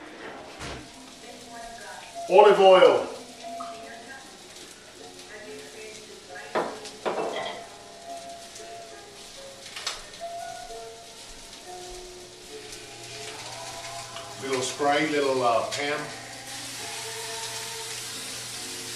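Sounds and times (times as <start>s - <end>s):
faint background music: 0.0s - 18.9s
sausages sizzling in a frying pan: 0.0s - 18.9s
pans knocking: 6.5s - 7.7s.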